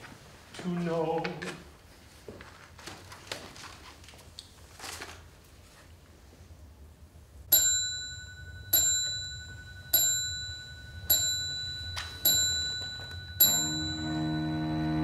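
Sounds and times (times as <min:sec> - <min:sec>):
bell-like metal tone struck: 0:07.6 - 0:15.0
low chord from chamber ensemble: 0:13.7 - 0:15.0.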